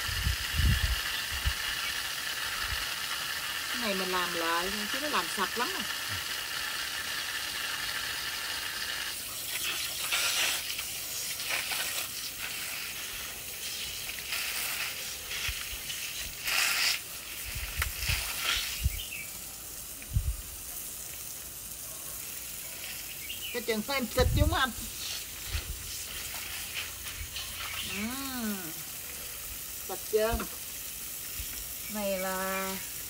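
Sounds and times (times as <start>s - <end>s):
water hissing from garden hose: 0.0s - 33.0s.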